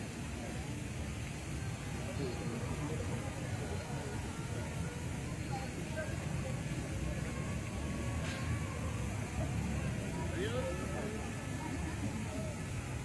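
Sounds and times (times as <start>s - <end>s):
low city rumble: 0.0s - 13.0s.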